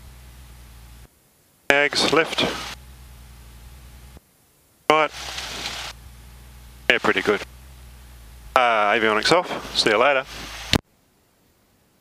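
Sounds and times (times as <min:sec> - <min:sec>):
faint aircraft engine idling: 0:00.0 - 0:04.2, 0:04.9 - 0:10.8
person speaking: 0:01.7 - 0:02.8, 0:06.8 - 0:07.5, 0:08.4 - 0:10.8.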